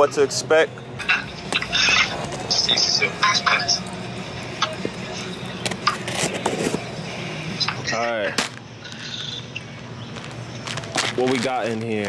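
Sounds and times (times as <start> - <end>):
packing tape ripping: 10.7 - 12.0.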